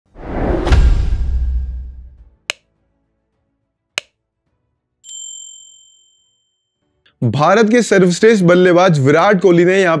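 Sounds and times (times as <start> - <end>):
bell-like notification ding: 5.1 - 6.8.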